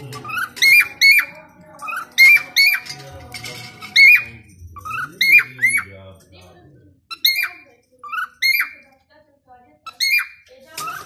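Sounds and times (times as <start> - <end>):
cockatiels chirping: 0.0 - 3.0, 3.6 - 6.0, 7.1 - 8.9, 9.8 - 11.0.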